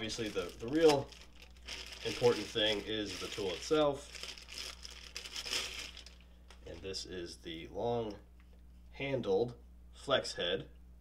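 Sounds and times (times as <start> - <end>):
plastic bag crinkling: 0.0 - 6.8.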